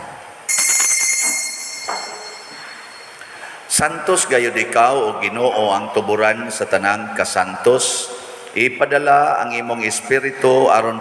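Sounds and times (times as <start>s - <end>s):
altar bells ringing: 0.5s - 3.8s.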